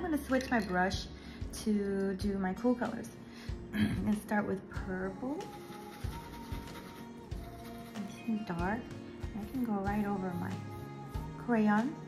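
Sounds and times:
background music of held notes: 0.0s - 12.0s.

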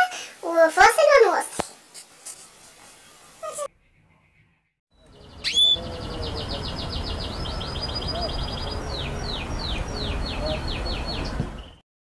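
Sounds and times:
high chirping birdsong trill: 2.9s - 11.8s.

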